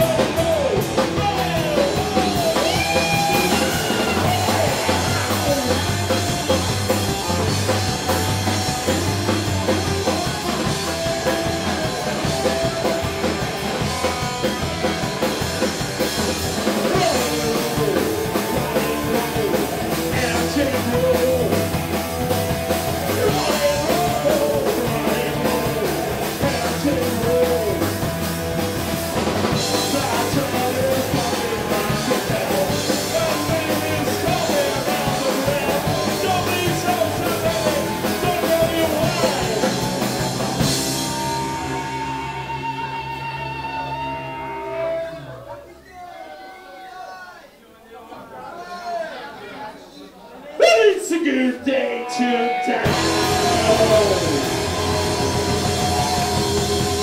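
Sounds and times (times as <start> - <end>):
person singing: 0.0 - 6.6, 16.7 - 22.0, 23.0 - 28.1, 29.5 - 45.0, 50.6 - 57.0
drum kit: 0.0 - 45.0, 52.5 - 57.0
distorted electric guitars: 0.0 - 45.7, 51.7 - 57.0.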